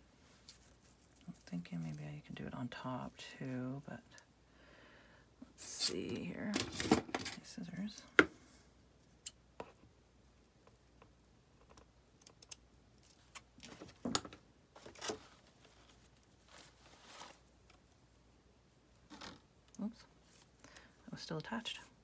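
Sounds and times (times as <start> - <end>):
fabric scraps rustling: 14.8 - 17.8.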